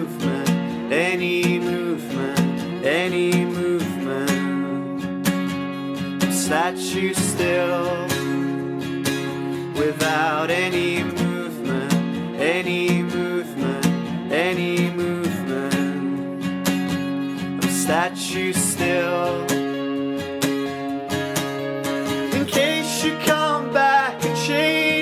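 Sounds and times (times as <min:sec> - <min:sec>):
electric guitar playing: 0:00.0 - 0:25.0
strummed acoustic guitar: 0:00.0 - 0:25.0.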